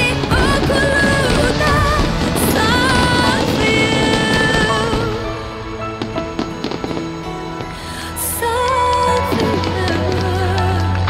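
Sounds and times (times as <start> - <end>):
fireworks cracking: 0.0 - 7.8
music with held notes: 0.0 - 11.0.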